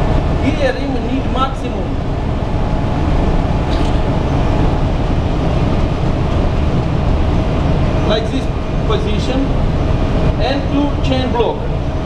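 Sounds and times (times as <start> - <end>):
engine-room machinery drone: 0.0 - 12.0
faint constant hum: 0.0 - 12.0.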